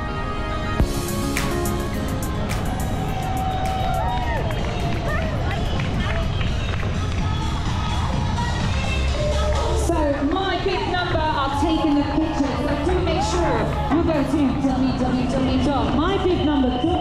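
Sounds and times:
music: 0.0 - 17.0.

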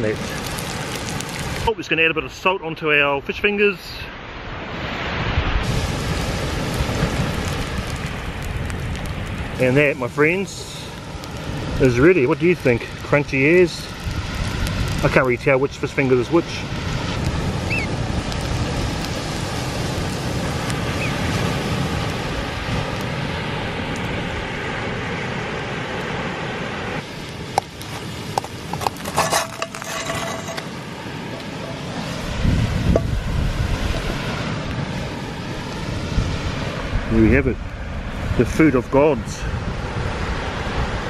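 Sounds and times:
surf: 0.0 - 41.0
wind on microphone: 4.6 - 10.5, 27.0 - 41.0
pan clinking and scraping on plate: 28.8 - 30.7.

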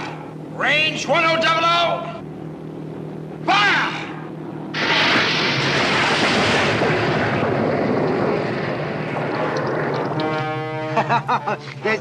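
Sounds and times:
low boat engine drone: 0.0 - 12.0.

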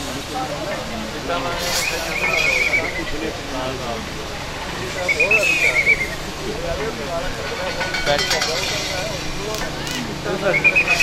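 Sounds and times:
high wavering call or whistle: 1.8 - 3.1, 5.0 - 6.2, 10.5 - 11.0.

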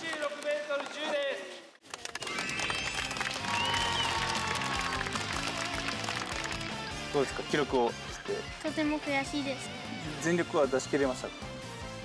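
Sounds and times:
children clapping: 0.0 - 1.2, 1.8 - 7.0
background music: 1.8 - 12.0.

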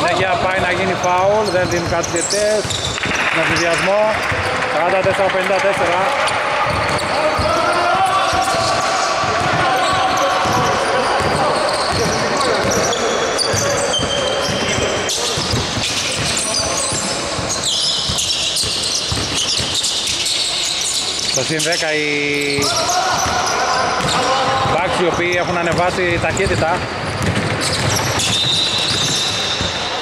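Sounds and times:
shoe squeaks: 0.0 - 5.0, 6.2 - 30.0
players' voices: 0.0 - 30.0
basketball bouncing: 0.5 - 20.2, 22.5 - 29.8.

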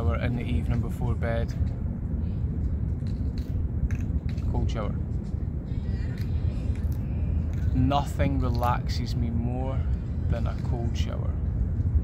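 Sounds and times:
faint city sounds: 0.0 - 12.0
wind buffeting microphone: 0.0 - 12.0.

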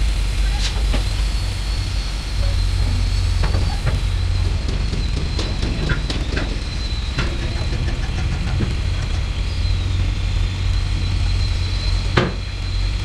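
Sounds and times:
engine running with low rumble: 0.0 - 13.0
high whine: 0.0 - 13.0.

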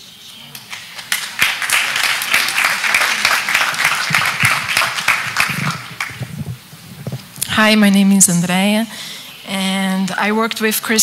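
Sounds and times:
audience applauding: 0.6 - 6.5.

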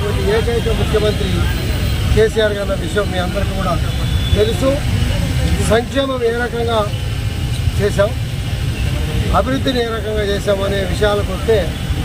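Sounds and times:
man speaking: 0.0 - 7.0.

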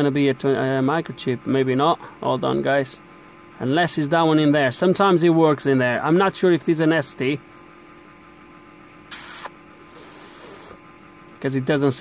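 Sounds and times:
faint electrical hum: 0.0 - 12.0
short hiss: 9.0 - 10.8.

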